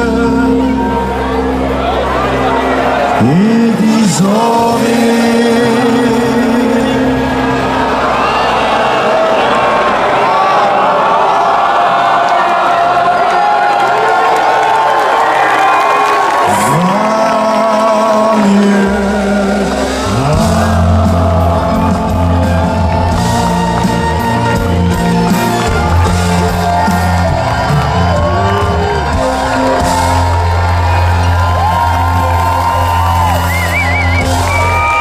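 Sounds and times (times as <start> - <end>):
bass guitar: 0.0 - 8.4, 16.5 - 35.0
live band with vocals: 0.0 - 8.7, 16.3 - 35.0
crowd whooping: 0.0 - 35.0.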